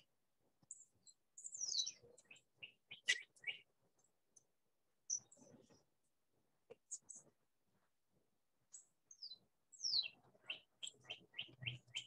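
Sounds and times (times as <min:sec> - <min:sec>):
faint birdsong: 0:00.0 - 0:07.6, 0:08.6 - 0:12.0.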